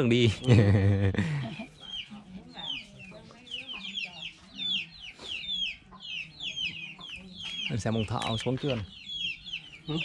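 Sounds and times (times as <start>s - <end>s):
chickens clucking: 0.0s - 10.0s
chicks peeping: 0.1s - 10.0s.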